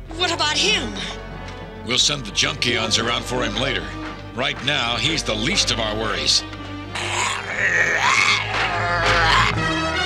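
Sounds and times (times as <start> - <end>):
cartoon robots groaning: 7.0 - 9.7.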